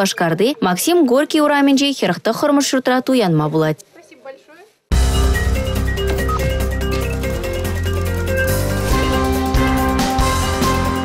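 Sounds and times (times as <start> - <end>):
news theme music: 4.9 - 11.0.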